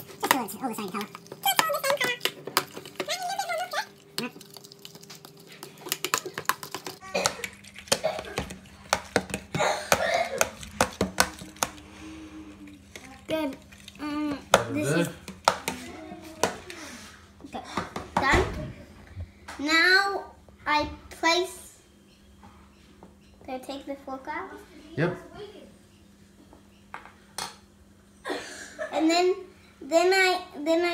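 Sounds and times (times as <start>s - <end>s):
fork beating eggs in plastic: 0.0s - 16.9s.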